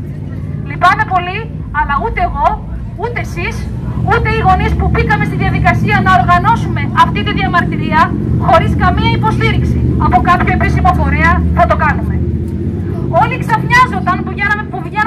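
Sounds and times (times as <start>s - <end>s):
steady low rumble: 0.0s - 15.0s
woman speaking through megaphone: 0.6s - 12.3s, 13.0s - 15.0s.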